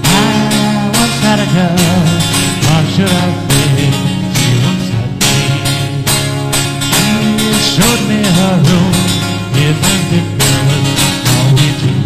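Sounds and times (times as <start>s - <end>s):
acoustic guitar playing: 0.0s - 12.0s.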